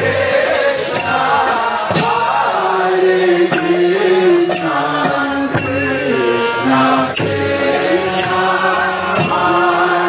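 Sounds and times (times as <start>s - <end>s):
voices chanting over music: 0.0s - 10.0s.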